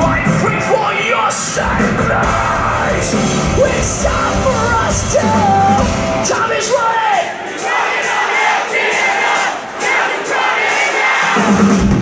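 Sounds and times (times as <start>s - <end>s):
thin rock music: 0.0s - 6.8s
crowd shouting and singing along: 0.0s - 12.0s
drums and bass: 0.0s - 12.0s.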